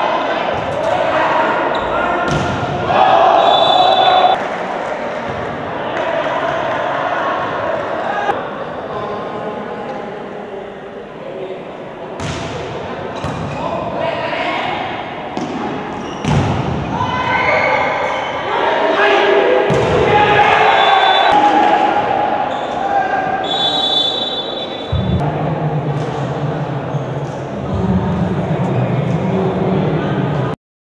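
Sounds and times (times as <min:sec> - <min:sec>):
players calling out: 0:00.1 - 0:04.4, 0:13.1 - 0:25.2
volleyball hits echoing in hall: 0:00.1 - 0:08.4, 0:12.0 - 0:14.0, 0:14.6 - 0:29.6.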